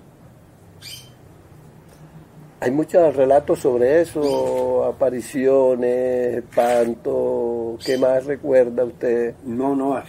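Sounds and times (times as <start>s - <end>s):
high bird chirp: 0.8s - 1.2s, 4.1s - 4.7s, 7.8s - 8.2s.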